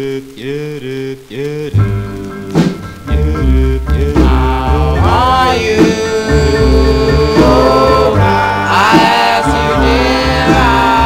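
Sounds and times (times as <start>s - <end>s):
vocal group singing in harmony: 3.0s - 11.0s.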